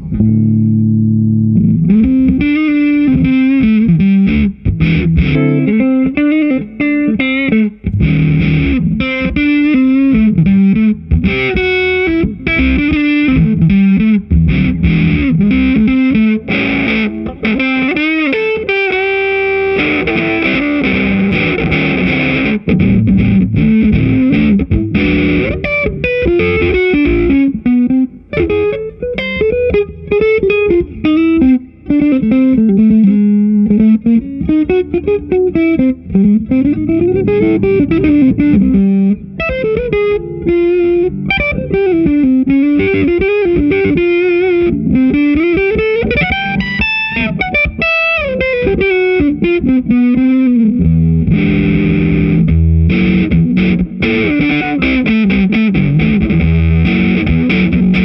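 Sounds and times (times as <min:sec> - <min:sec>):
fuzzy electric guitar lead: 0:00.0 - 0:58.0.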